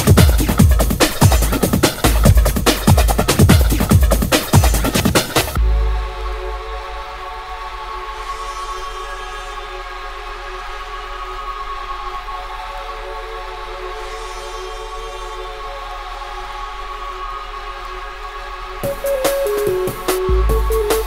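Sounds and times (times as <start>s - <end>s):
deep bass note: 5.6s - 7.3s.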